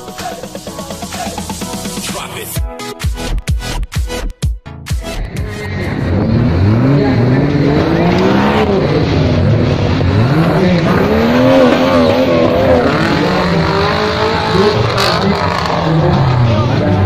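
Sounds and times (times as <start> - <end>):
jeep engine revving: 5.1 - 17.0.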